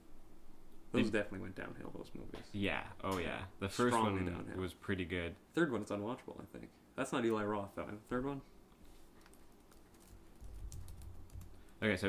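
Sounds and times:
typing on computer keyboard: 0:09.2 - 0:11.8.

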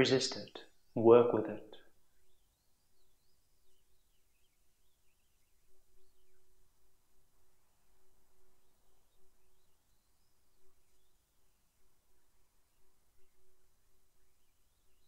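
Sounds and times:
faint high chirping glides: 0:00.0 - 0:15.0.

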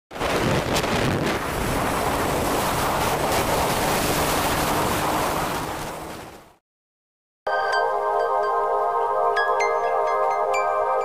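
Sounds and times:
wind roaring over microphone: 0:00.1 - 0:06.6.

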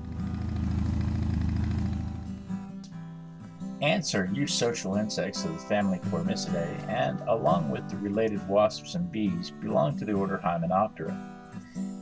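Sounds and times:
motorcycle engine idling: 0:00.0 - 0:02.5.

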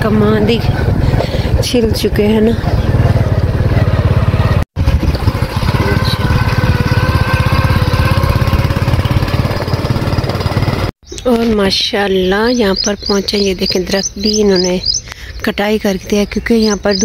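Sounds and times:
motorcycle engine running: 0:00.0 - 0:11.0, 0:12.5 - 0:15.0, 0:16.5 - 0:17.0.

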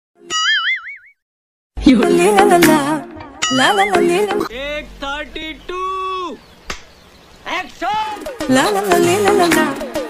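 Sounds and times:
cartoon boing: 0:00.3 - 0:01.2
music with voice: 0:01.8 - 0:05.6, 0:07.8 - 0:10.0.

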